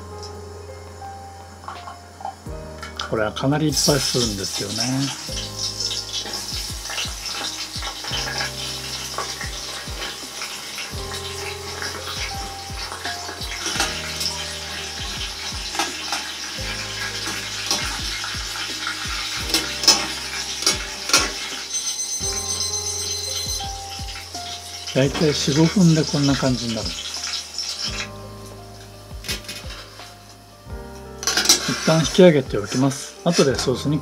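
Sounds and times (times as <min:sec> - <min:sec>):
background music with bass: 0:00.0 - 0:34.0
deep-frying sizzle: 0:00.0 - 0:34.0.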